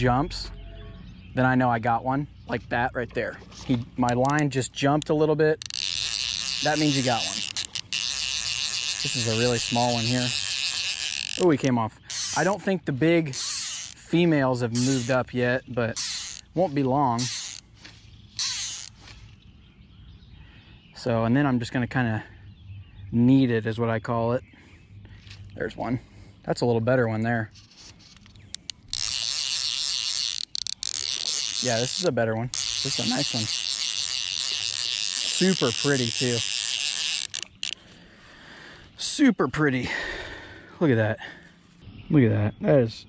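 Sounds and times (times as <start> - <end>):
fishing reel ratchet buzzing: 4.0 - 12.6, 13.2 - 19.2, 27.6 - 37.9.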